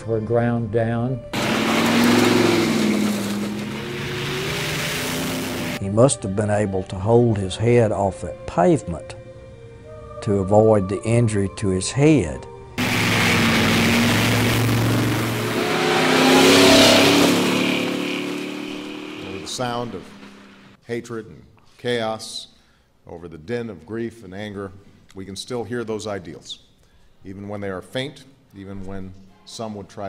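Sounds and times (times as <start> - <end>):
rushing road noise: 1.4 - 5.8, 12.8 - 20.8
vehicle engine: 1.4 - 5.8, 12.8 - 20.8.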